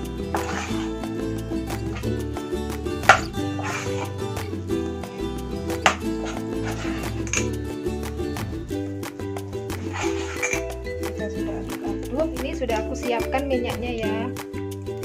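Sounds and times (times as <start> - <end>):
background music with beat: 0.0 - 15.0
metal spoon clinking on pot: 5.8 - 7.6, 9.9 - 10.8.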